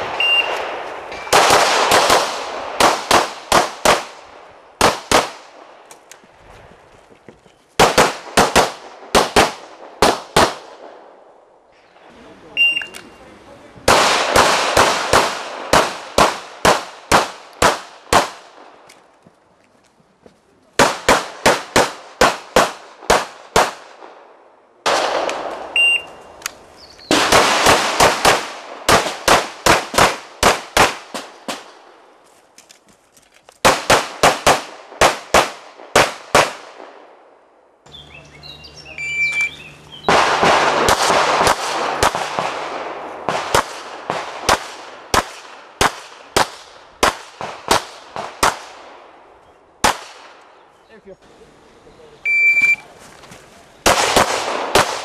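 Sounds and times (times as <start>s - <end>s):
pistol shots: 0.0s - 5.7s, 7.8s - 11.1s, 13.9s - 18.7s, 20.8s - 24.2s, 24.8s - 26.0s, 27.1s - 31.8s, 33.6s - 37.0s, 40.1s - 49.1s, 53.8s - 55.0s
high electronic timer beep: 0.2s - 0.5s, 12.6s - 13.0s, 25.8s - 26.2s, 39.0s - 39.6s, 52.3s - 52.8s.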